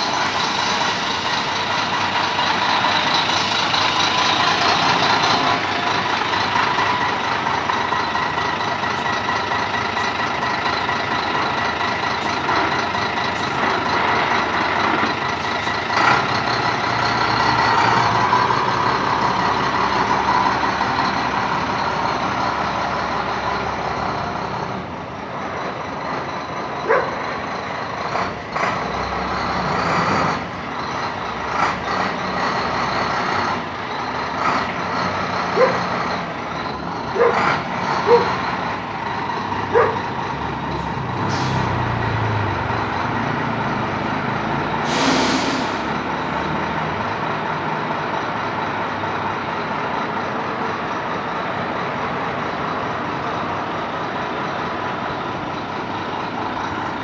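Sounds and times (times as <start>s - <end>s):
truck diesel engine idling: 0.0s - 57.0s.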